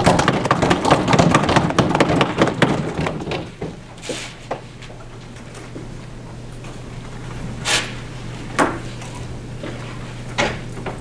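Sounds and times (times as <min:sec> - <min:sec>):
audience applause: 0:00.0 - 0:03.2.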